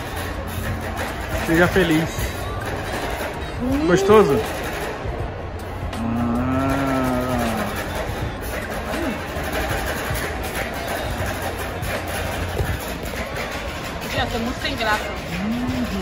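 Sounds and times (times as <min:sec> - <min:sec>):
steady background noise: 0:00.0 - 0:16.0
person humming mmm: 0:06.0 - 0:07.8, 0:15.3 - 0:16.0.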